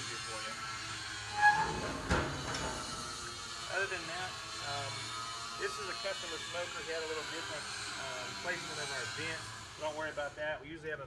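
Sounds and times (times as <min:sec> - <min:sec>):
door hinge squeak: 0:01.3 - 0:03.3
metal door clanking shut: 0:01.4 - 0:03.4.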